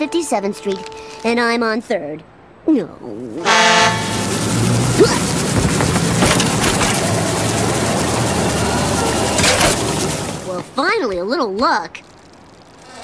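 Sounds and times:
street sweeper engine and brushes: 3.2s - 12.0s
street sweeper horn blast: 3.4s - 10.7s
low hum: 3.4s - 10.8s.

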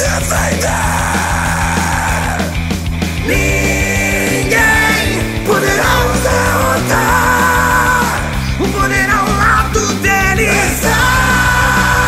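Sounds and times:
distorted guitars: 0.0s - 12.0s
drums keeping steady beat: 0.0s - 12.0s.

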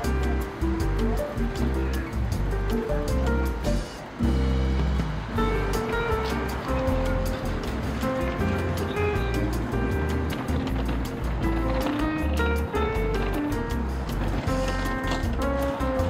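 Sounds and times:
bass line: 0.0s - 16.0s
drum beat: 0.0s - 16.0s.

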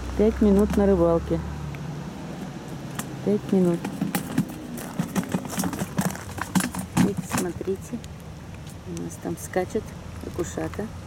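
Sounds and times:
fish flapping in plastic bucket: 3.8s - 7.6s.

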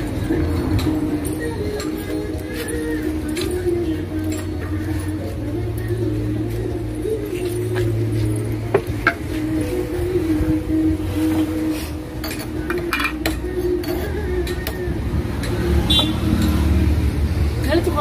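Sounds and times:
background music with wavering melody: 0.0s - 18.0s
kitchenware clinking: 12.2s - 14.8s.

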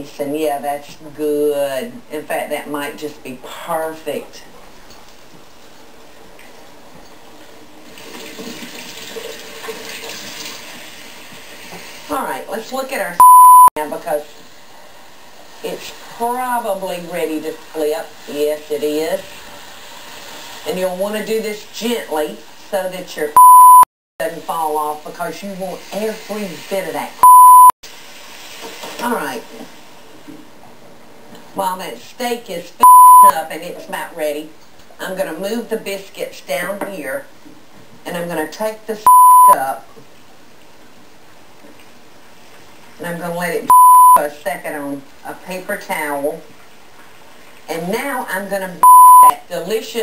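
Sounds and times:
meat sizzling in hot oil: 7.9s - 12.1s, 14.2s - 22.7s, 27.9s - 30.1s
high-pitched censor beep: 13.2s - 13.7s, 23.4s - 23.9s, 27.2s - 27.7s, 32.8s - 33.3s, 39.1s - 39.6s, 43.7s - 44.2s, 48.8s - 49.4s.

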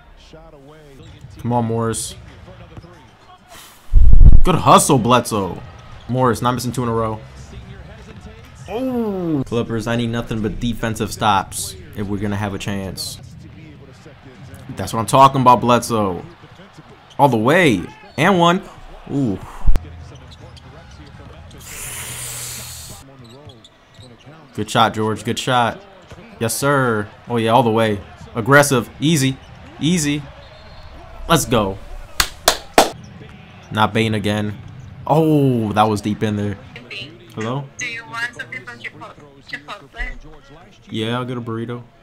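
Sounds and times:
arena crowd noise: 0.0s - 42.0s
loud low thump: 3.9s - 4.5s
commentator talking: 4.4s - 16.5s, 17.2s - 20.0s, 35.1s - 41.5s.

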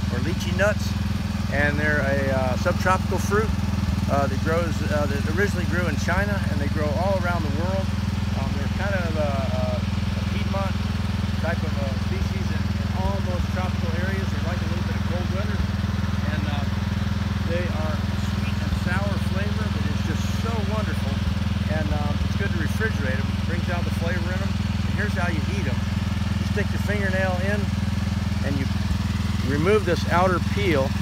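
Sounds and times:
people talking: 0.0s - 3.5s, 4.1s - 10.8s, 11.4s - 16.8s, 17.4s - 25.8s, 26.4s - 27.7s, 28.4s - 28.8s, 29.4s - 31.0s
low engine drone: 0.0s - 31.0s.

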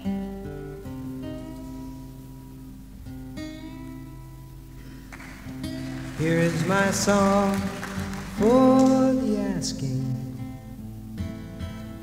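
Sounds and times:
fingerpicked acoustic guitar: 0.0s - 12.0s.

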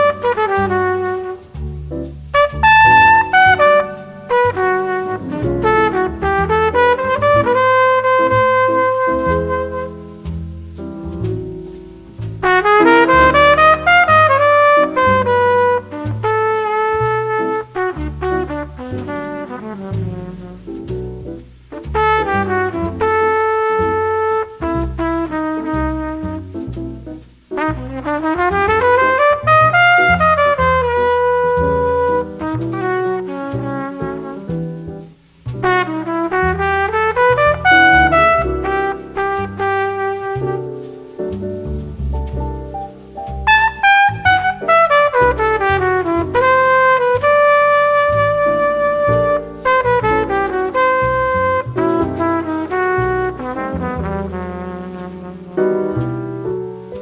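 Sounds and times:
double bass: 0.0s - 57.0s
drums: 0.0s - 57.0s
piano chords: 0.0s - 57.0s
trumpet melody: 0.0s - 57.0s.

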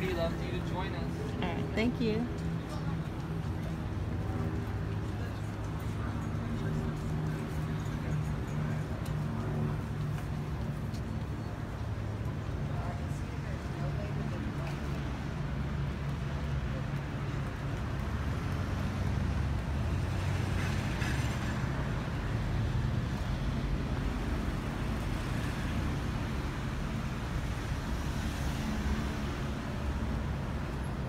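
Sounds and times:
traffic noise: 0.0s - 31.0s.

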